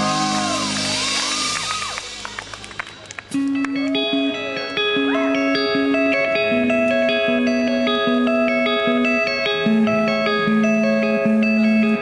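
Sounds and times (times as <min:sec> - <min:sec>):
electric guitar chord ringing: 0:00.0 - 0:12.0
electric guitar riff: 0:00.0 - 0:12.0.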